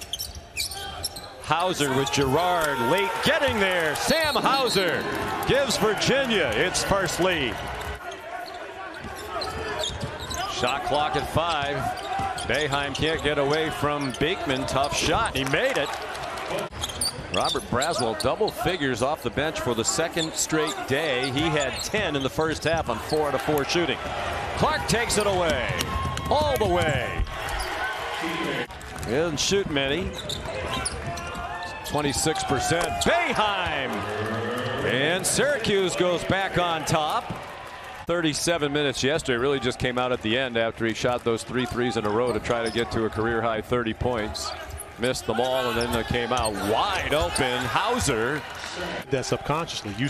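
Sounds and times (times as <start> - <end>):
sneakers squeaking: 0.0 - 2.2, 2.8 - 5.4, 7.6 - 18.9, 20.0 - 23.4, 24.8 - 28.0, 29.9 - 33.4, 42.1 - 43.0, 44.5 - 48.2
crowd noise: 0.0 - 50.0.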